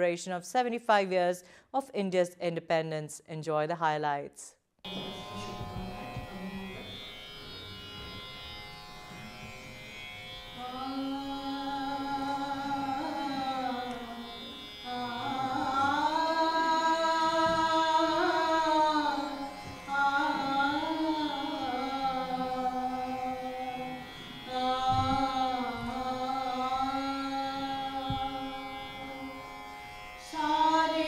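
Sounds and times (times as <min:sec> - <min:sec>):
instrumental drone of held tones: 0:04.9 - 0:31.0
woman singing: 0:10.6 - 0:29.4, 0:30.2 - 0:31.0.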